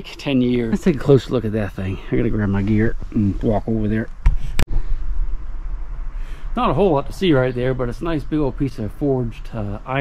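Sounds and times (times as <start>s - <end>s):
low rumble: 0.5s - 9.9s.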